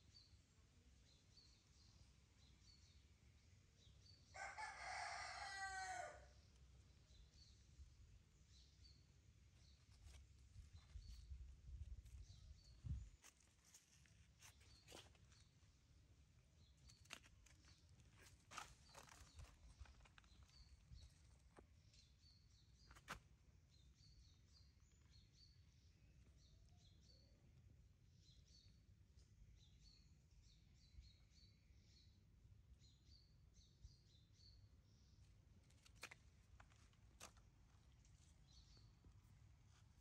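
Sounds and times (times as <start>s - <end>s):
rooster crowing: 4.3s - 6.3s
small feet scampering over dry leaves: 13.0s - 15.6s, 16.8s - 21.6s.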